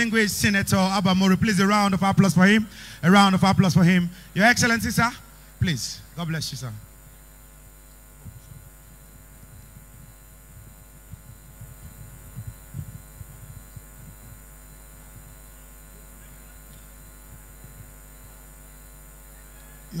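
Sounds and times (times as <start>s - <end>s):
low electrical hum: 0.0s - 20.0s
faint low thuds: 8.2s - 15.4s.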